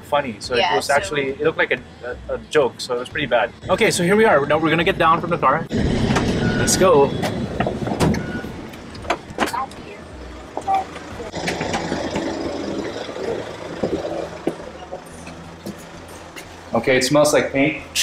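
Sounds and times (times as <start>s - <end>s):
street and traffic hum: 0.0s - 18.0s
footsteps: 13.7s - 16.7s.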